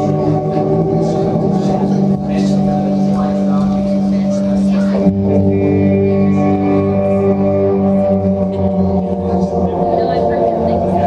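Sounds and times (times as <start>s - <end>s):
live band droning chords: 0.0s - 11.0s.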